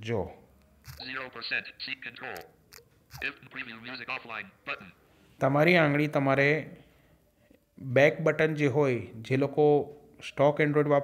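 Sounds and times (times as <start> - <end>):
fast synthetic voice speaking: 3.2 - 5.0.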